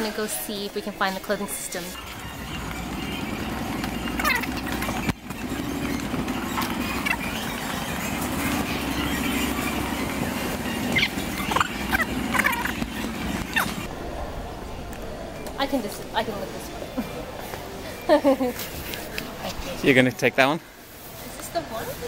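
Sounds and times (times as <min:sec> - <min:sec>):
trolley wheels rumbling on concrete: 0:00.0 - 0:14.0.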